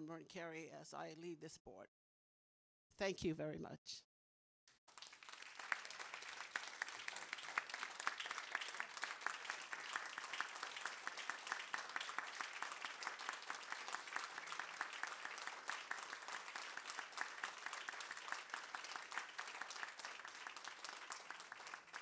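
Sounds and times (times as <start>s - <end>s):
people applauding: 4.9s - 22.0s.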